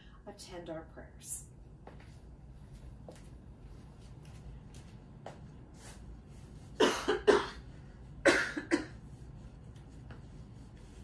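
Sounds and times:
person coughing: 6.8 - 9.0.

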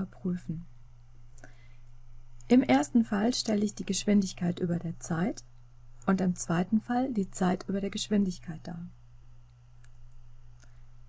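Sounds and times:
low electrical hum: 0.0 - 11.0
computer mouse clicks: 9.5 - 10.8.

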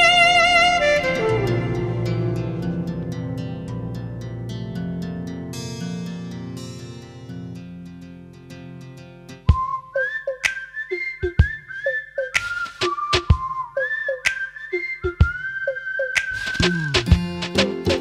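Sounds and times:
whistled melody: 0.0 - 2.9, 9.4 - 18.0
percussion hits: 16.2 - 18.0.

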